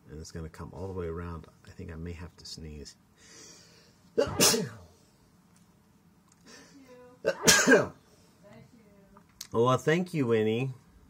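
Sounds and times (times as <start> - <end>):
man sneezing: 4.2 - 4.9, 7.3 - 8.0.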